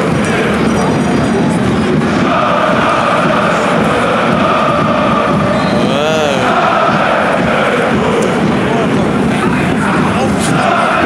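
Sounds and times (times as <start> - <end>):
stadium crowd chanting: 0.0 - 11.0.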